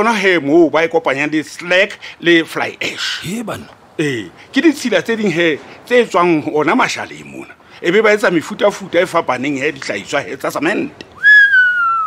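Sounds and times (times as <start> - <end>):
person speaking: 2.8 - 4.8
person whistling: 11.2 - 12.0.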